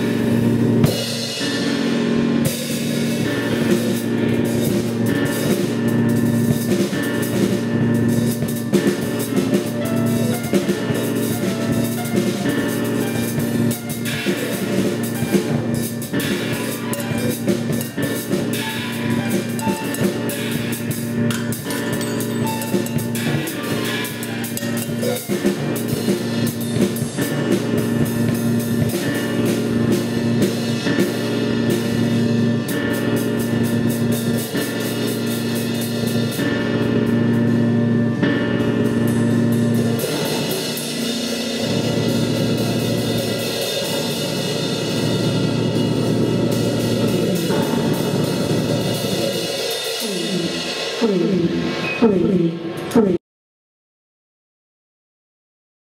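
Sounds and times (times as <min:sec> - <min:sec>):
drum kit with snare and cymbals: 0:00.0 - 0:53.2
keyboard tones: 0:07.1 - 0:26.2.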